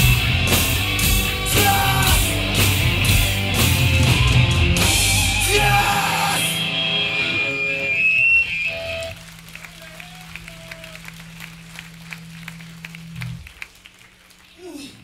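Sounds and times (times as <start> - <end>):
low amplifier hum: 0.0 - 15.0
crowd hand claps: 8.5 - 15.0.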